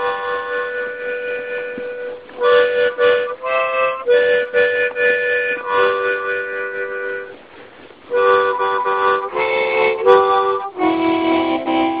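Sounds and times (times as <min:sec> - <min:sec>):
harmonica chord: 0:00.0 - 0:12.0.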